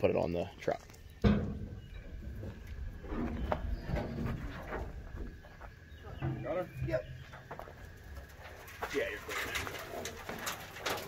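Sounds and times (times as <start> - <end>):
sheet metal knocks and clanks: 1.2 - 2.5.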